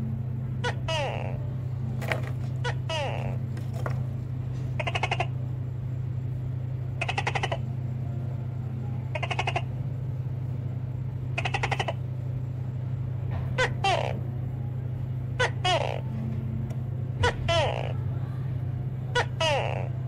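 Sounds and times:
steady low hum: 0:00.0 - 0:20.0.

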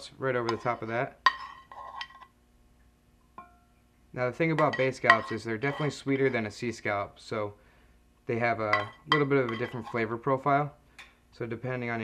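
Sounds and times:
metal spoon clinking on skillet: 0:00.4 - 0:02.3, 0:03.4 - 0:03.7, 0:04.5 - 0:06.0, 0:08.6 - 0:10.0.

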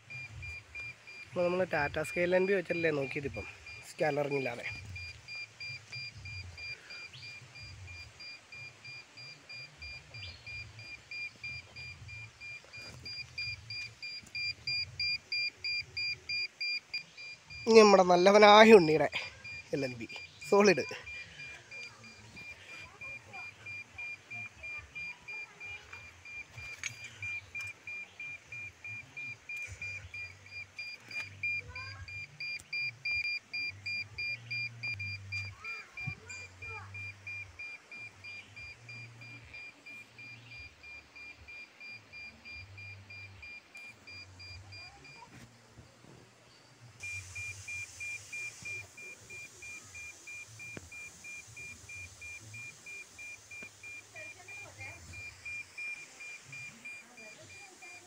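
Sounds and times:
signal meter beeping: 0:00.0 - 0:46.0, 0:46.6 - 0:58.0.

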